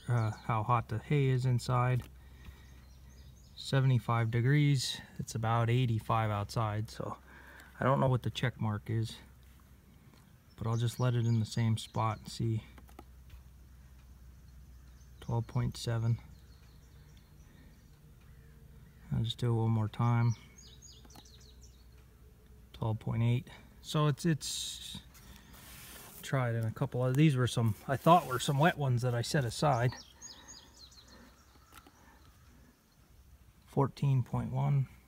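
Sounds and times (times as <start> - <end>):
person speaking: 7.8 - 9.4, 22.7 - 30.1
faint bird chirps: 10.0 - 22.8, 27.7 - 35.0.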